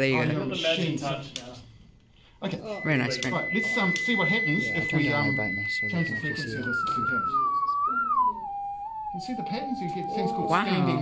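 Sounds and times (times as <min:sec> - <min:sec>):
electronic tone gliding in pitch: 0:02.6 - 0:11.0.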